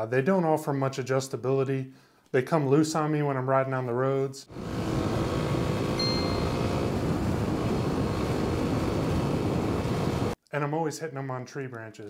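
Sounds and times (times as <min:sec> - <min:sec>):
motorcycle engine drone: 0:04.5 - 0:10.4.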